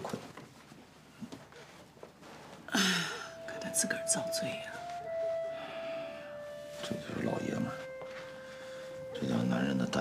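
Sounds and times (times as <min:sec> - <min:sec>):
soft sustained music: 0:02.8 - 0:10.0.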